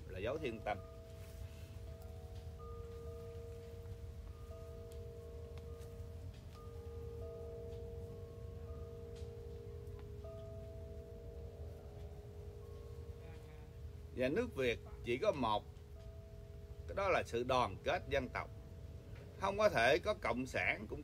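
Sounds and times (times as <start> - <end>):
chimes ringing softly: 0.0 - 21.0
low steady rumble: 0.0 - 21.0.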